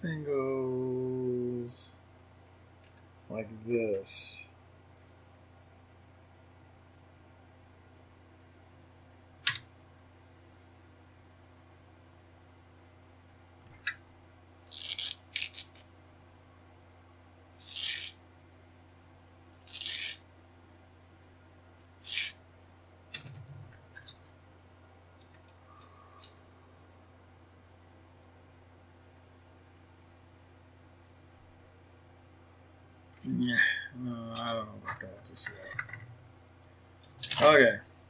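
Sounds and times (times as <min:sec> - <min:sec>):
plastic parts scraping and rattling: 0:23.1 - 0:24.3, 0:37.0 - 0:37.6.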